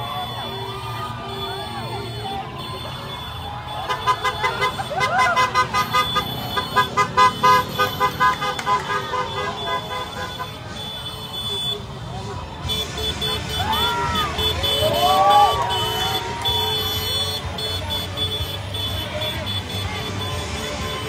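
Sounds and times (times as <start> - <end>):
crowd shouting and cheering: 0.0 - 21.0
vehicle horns tooting: 0.0 - 21.0.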